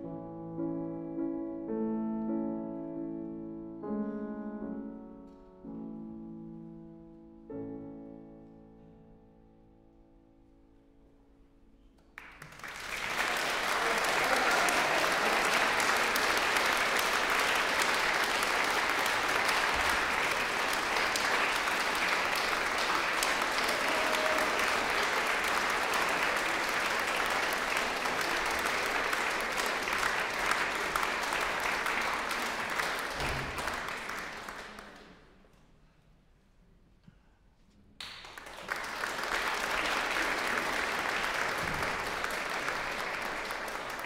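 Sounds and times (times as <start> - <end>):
piano notes: 0.0 - 11.5
audience applause: 12.2 - 35.2, 38.0 - 44.0.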